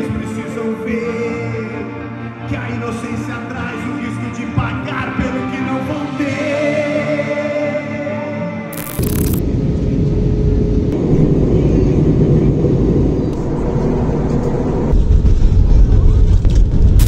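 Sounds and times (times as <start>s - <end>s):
jet engine rumble in cabin: 9.4s - 16.7s.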